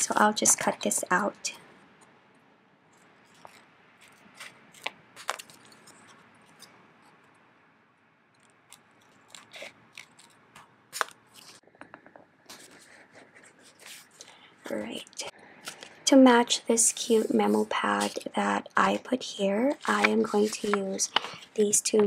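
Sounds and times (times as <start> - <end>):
paper handling: 3.2 - 6.8, 8.7 - 11.6, 17.0 - 18.4, 19.8 - 22.0
scissors snipping photo paper: 8.7 - 11.6, 19.8 - 22.0.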